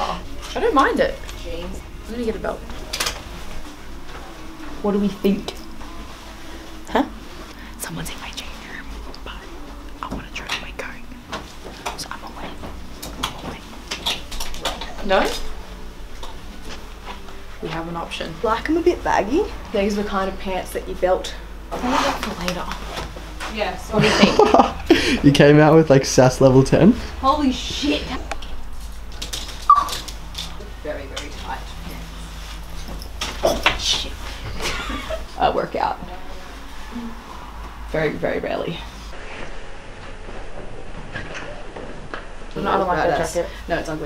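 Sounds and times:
faint shop room tone: 0.0s - 44.0s
person whispering: 7.5s - 14.2s.

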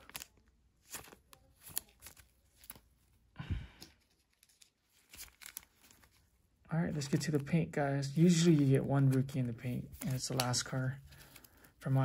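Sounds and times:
plastic wrapper crinkle: 4.0s - 7.5s
trading cards clicking and tapping: 8.2s - 10.9s.

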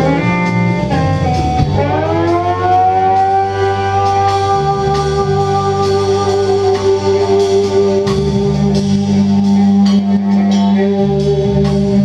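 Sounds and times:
electric guitar bending note: 0.0s - 12.0s
steady bass line: 0.0s - 12.0s.

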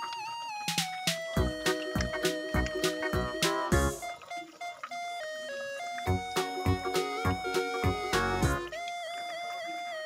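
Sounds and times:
simple melody of single notes: 0.0s - 10.0s
music beat: 0.6s - 4.9s, 5.8s - 8.8s.

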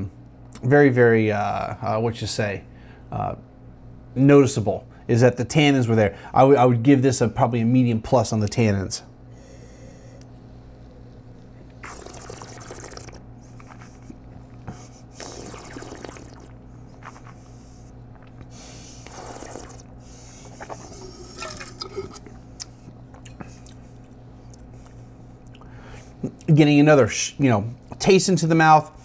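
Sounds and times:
spitting into metal cup: 11.8s - 13.9s, 15.2s - 16.5s, 19.0s - 19.9s, 20.6s - 22.3s
hissy slurps of wine: 11.8s - 14.2s, 15.2s - 17.4s, 19.0s - 19.9s
wine swishing in mouth: 19.0s - 22.2s.

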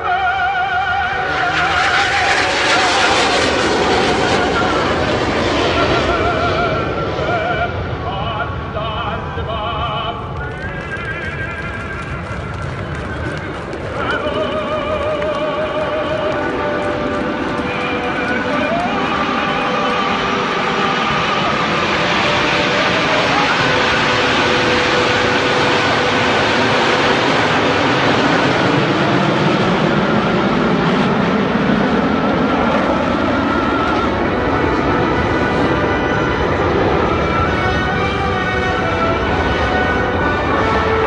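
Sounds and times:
jet engines roaring overhead: 0.0s - 41.0s.

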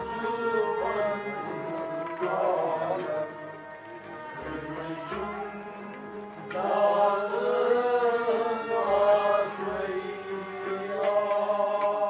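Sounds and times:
harmonium drone: 0.0s - 10.8s
person singing devotional song: 0.0s - 12.0s.

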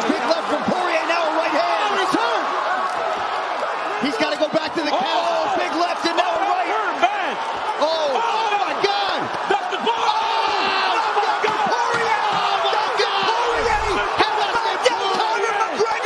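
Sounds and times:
broadcast commentary: 0.0s - 2.6s, 3.6s - 16.0s
arena crowd: 0.0s - 16.0s
voices shouting excitedly: 0.0s - 16.0s.

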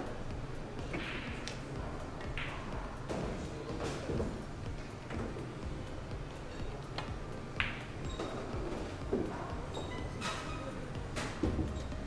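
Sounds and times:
billiard balls clacking: 0.8s - 1.6s, 6.9s - 9.3s.

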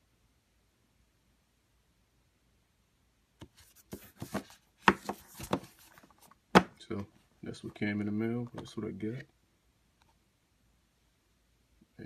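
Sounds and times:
plastic cases clicking and tapping: 4.0s - 5.8s.

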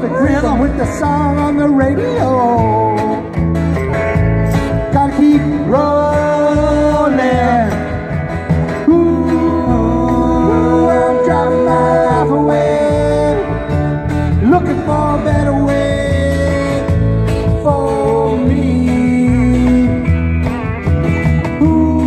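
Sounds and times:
band playing country song: 0.0s - 22.0s
person singing long held notes: 8.9s - 13.8s.

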